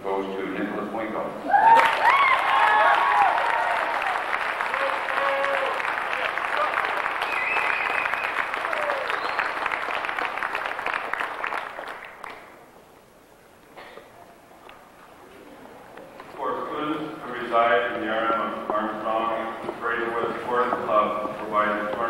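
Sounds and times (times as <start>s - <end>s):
audience applauding: 1.6s - 12.6s.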